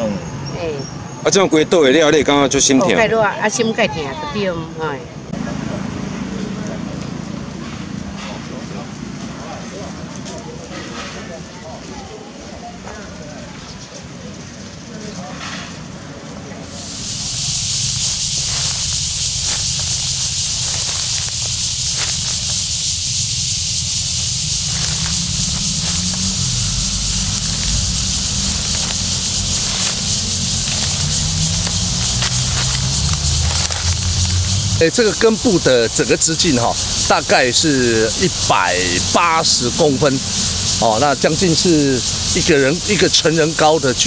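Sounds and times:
high-pitched hiss: 16.6 - 44.0
low unsteady rumble: 16.9 - 34.9.

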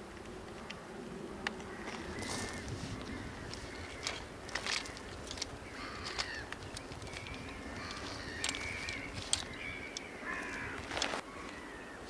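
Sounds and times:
tripod being handled: 1.6 - 11.2
birds calling harshly: 1.6 - 12.0
footsteps on shingle: 1.8 - 11.2.

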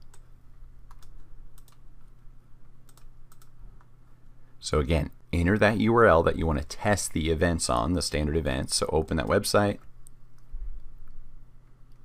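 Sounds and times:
low electrical hum: 0.0 - 12.0
computer input clicks: 0.9 - 1.8, 2.8 - 3.5.

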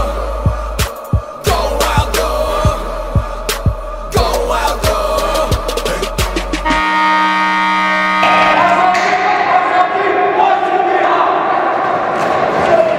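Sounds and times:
hip-hop drum beat: 0.0 - 6.8
held synth chord: 6.6 - 9.3
group shouting and cheering: 8.2 - 12.9.

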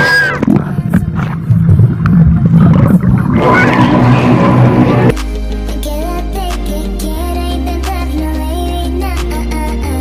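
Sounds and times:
underwater churning rumble: 0.4 - 5.1.

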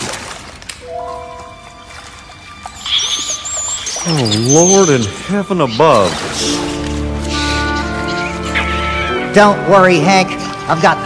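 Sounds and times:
water splash and trickle: 0.0 - 11.0
cartoon music with held tones: 0.8 - 10.6
rats squeaking: 2.6 - 9.3.

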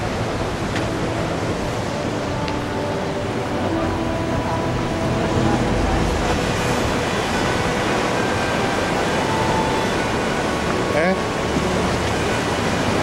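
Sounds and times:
sea surf breaking over rocks: 0.0 - 13.0.

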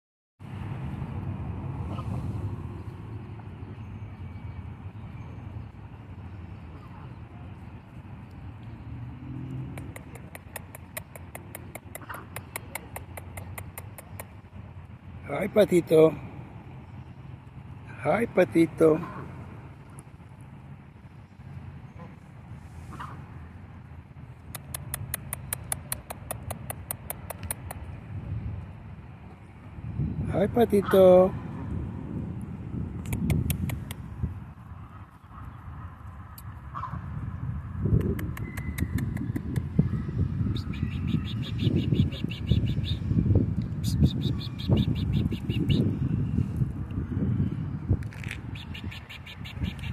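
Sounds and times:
wind rumbling on microphone: 0.4 - 18.0, 18.8 - 49.9
sharp clicks: 9.6 - 14.4, 24.5 - 27.9, 33.0 - 34.0.

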